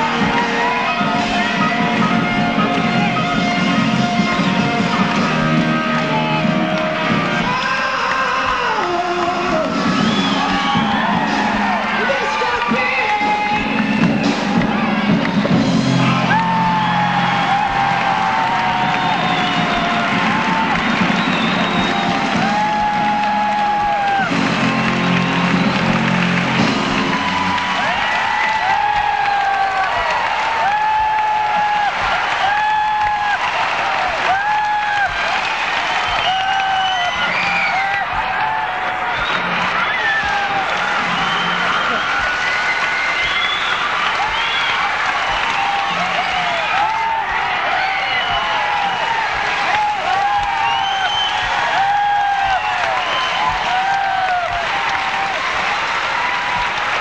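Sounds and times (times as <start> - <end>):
rock band playing loudly: 0.0 - 7.7, 8.6 - 29.6
audience applauding and cheering: 0.0 - 57.0.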